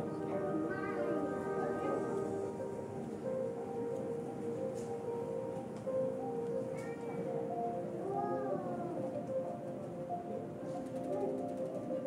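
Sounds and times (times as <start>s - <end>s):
ambient music with held tones: 0.0s - 12.0s.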